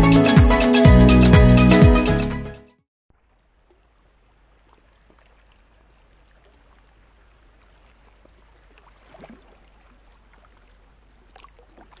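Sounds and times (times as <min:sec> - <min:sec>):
moving water: 0:03.1 - 0:12.0
small water splashes: 0:03.1 - 0:12.0.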